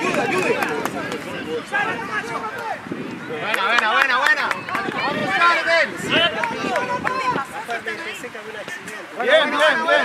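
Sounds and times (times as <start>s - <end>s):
people shouting: 0.0s - 8.2s, 9.2s - 10.0s.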